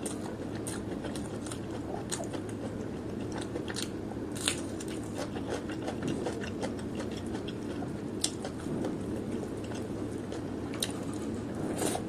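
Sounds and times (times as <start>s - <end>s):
wet chewing crunches: 0.0s - 12.0s.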